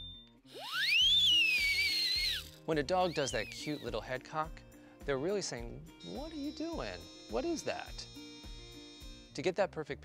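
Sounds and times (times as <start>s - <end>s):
soft background music: 0.0s - 10.0s
whistle noisemaker call: 0.6s - 4.0s.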